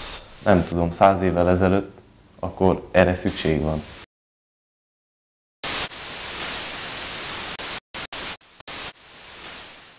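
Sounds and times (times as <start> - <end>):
hissing static: 0.0 - 0.9, 3.2 - 4.1, 5.6 - 9.9.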